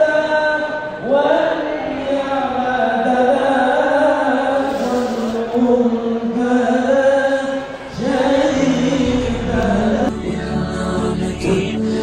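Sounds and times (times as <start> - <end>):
devotional chant singing: 0.0 - 12.0
low bass accompaniment: 7.9 - 12.0.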